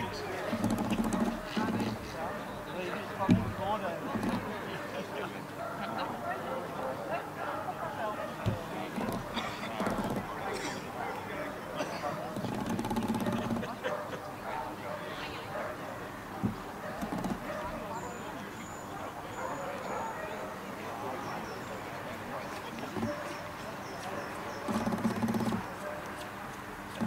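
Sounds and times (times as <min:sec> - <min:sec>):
people talking: 0:00.0 - 0:12.5, 0:13.2 - 0:25.7
dog barking: 0:05.6 - 0:09.3, 0:10.4 - 0:12.3, 0:13.3 - 0:18.2, 0:18.8 - 0:20.6, 0:22.3 - 0:24.9, 0:25.6 - 0:26.2.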